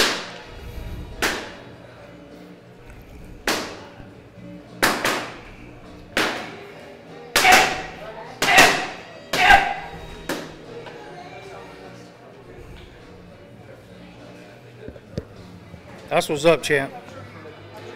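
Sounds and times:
boxing gloves hitting pads: 3.4s - 3.9s, 4.8s - 5.4s.

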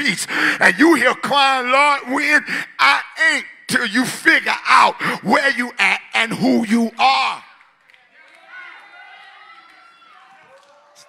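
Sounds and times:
congregation voices responding: 2.0s - 7.6s.

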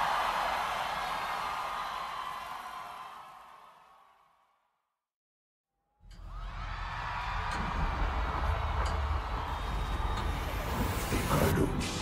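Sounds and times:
crowd roar: 0.0s - 4.2s, 6.2s - 11.5s.

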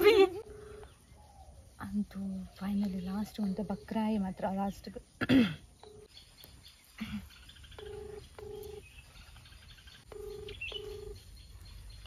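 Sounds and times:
phone ringback tone: 0.4s - 0.9s, 5.8s - 6.1s, 7.8s - 8.8s, 10.1s - 11.2s.

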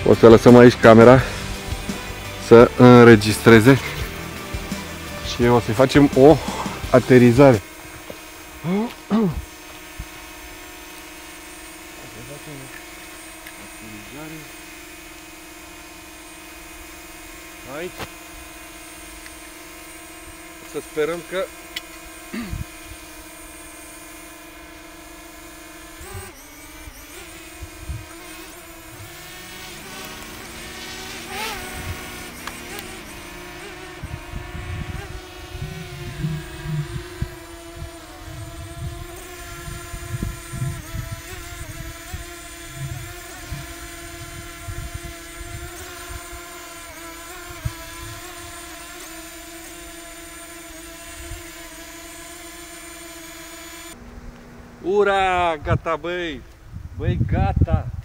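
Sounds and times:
drone propellers whining: 0.0s - 56.6s
low thumps: 27.3s - 45.7s.

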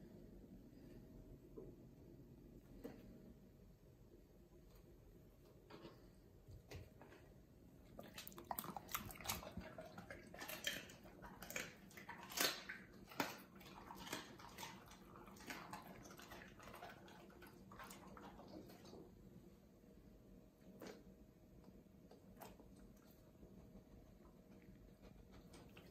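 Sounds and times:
dog chewing meat: 7.9s - 19.0s.

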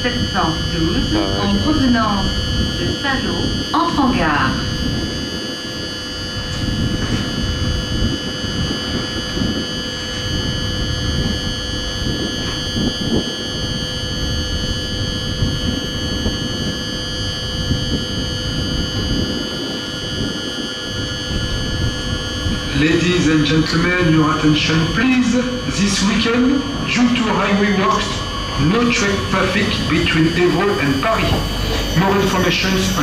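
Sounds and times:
electrical hum: 0.0s - 33.0s
railcar engine and wheels rumbling: 21.4s - 33.0s.

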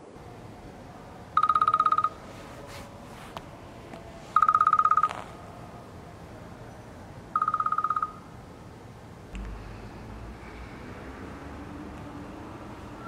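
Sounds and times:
smartphone alarm beeping: 1.4s - 2.2s, 4.4s - 5.2s, 7.4s - 8.3s.

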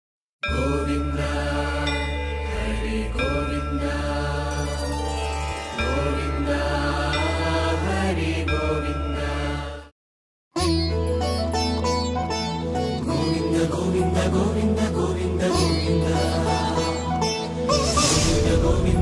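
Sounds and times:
chanted mantra: 0.5s - 4.8s.

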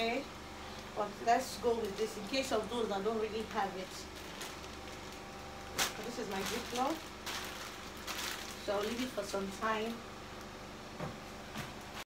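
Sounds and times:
steady low hum: 0.0s - 12.0s
plastic bag handled: 0.8s - 10.6s
sharp plastic crinkle: 1.7s - 10.6s.

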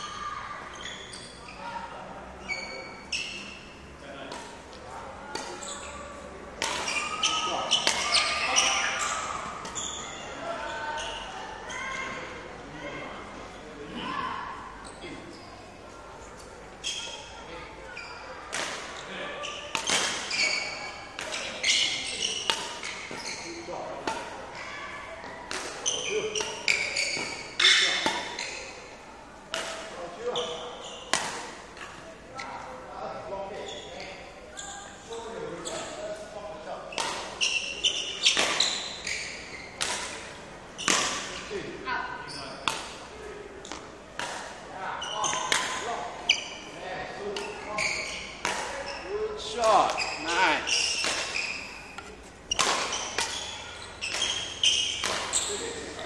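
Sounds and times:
sneaker squeaks: 0.0s - 12.4s, 14.8s - 32.8s, 33.4s - 56.0s
racket hitting shuttlecock: 4.3s - 5.7s, 6.6s - 8.8s, 18.5s - 18.9s, 19.7s - 20.4s, 21.1s - 23.3s, 24.0s - 24.4s, 25.5s - 28.5s, 29.5s - 30.0s, 31.1s - 32.0s, 37.0s - 37.5s, 38.2s - 39.2s, 39.8s - 41.4s, 42.6s - 43.0s, 43.6s - 44.6s, 45.3s - 46.0s, 48.4s - 48.8s, 50.8s - 56.0s.

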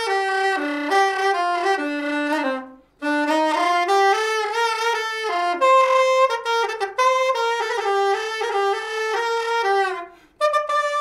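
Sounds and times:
soprano saxophone melody: 0.0s - 11.0s.

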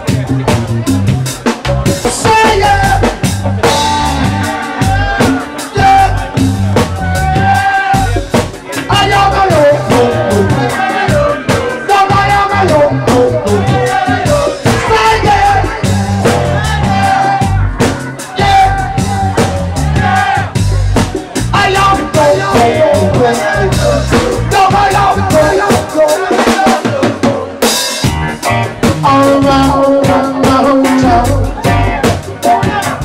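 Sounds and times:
funk blues band playing: 0.0s - 33.0s.

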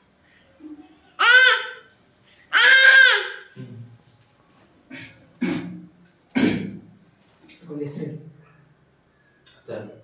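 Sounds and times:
person coughing: 6.4s - 6.8s.

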